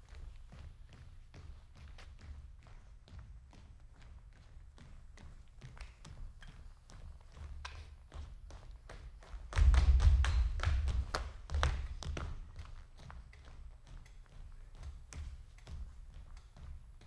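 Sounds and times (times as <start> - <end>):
footsteps and taps on stage floor: 0.0 - 17.0.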